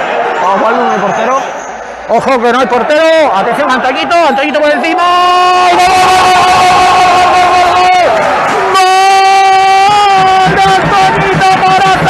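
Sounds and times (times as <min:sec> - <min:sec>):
crowd noise: 0:00.0 - 0:12.0
commentator shouting goal: 0:02.5 - 0:12.0.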